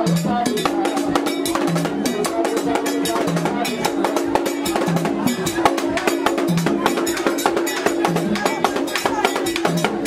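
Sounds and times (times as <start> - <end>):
drums: 0.0 - 10.0
voices singing: 0.0 - 10.0.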